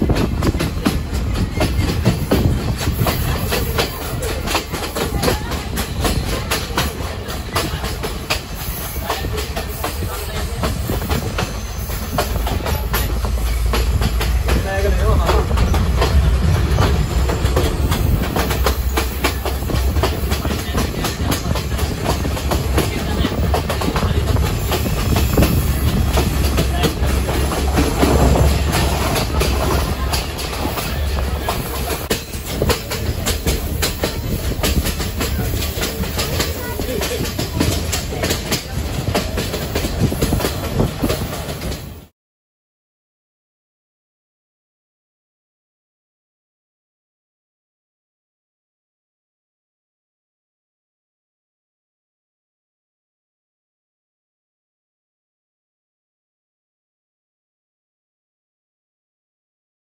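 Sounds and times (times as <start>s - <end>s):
low train rumble: 0.0s - 42.1s
train wheels clattering: 0.0s - 42.1s.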